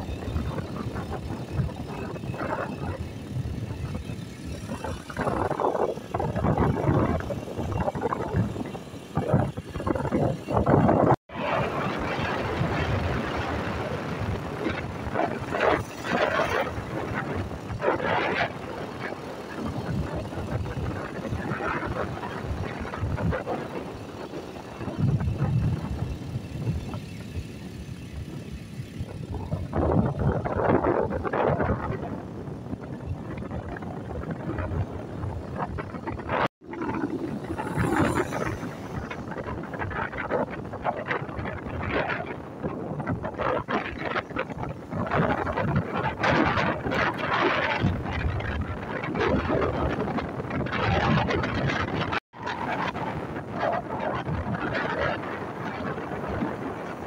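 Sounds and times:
car engine: 0:00.0 - 0:41.8
tyres on wet road: 0:00.0 - 0:57.0.

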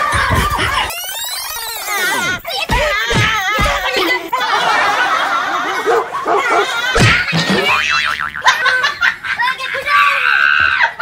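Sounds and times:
laughter: 0:04.3 - 0:11.0
cartoon boing sound effects: 0:07.0 - 0:08.8.

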